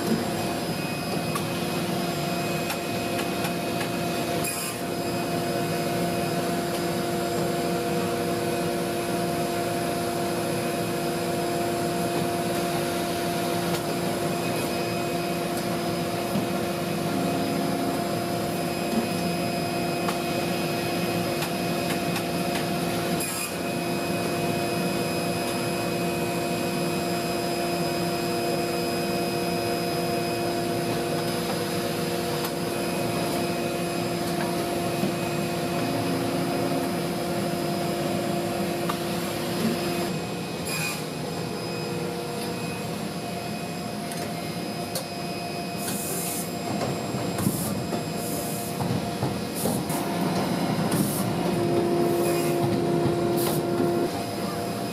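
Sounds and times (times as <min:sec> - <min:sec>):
machine motors and blowers droning: 0:00.0 - 0:54.9.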